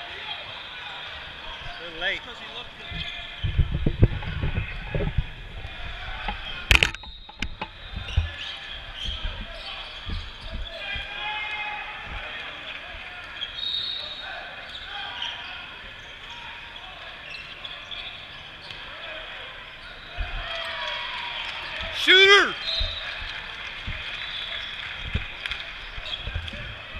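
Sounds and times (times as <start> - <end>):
distant voices and gym chatter: 0.0 - 25.0.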